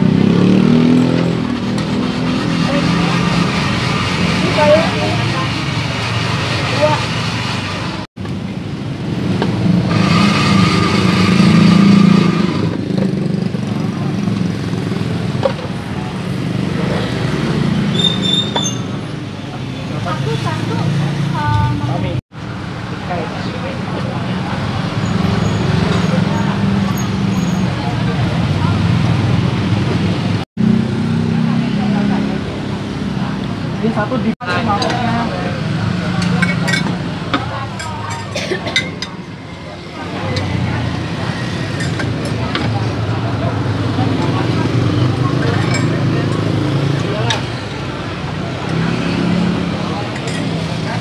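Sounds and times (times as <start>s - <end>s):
road traffic rumble: 0.0s - 51.0s
indistinct voices chattering: 1.4s - 8.1s, 22.8s - 30.4s, 31.0s - 51.0s.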